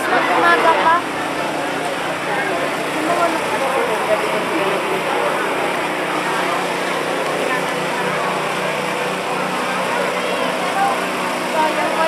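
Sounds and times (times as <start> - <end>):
clear voices: 0.0 - 12.0
crowd murmuring: 0.0 - 12.0
small engine humming: 0.0 - 12.0.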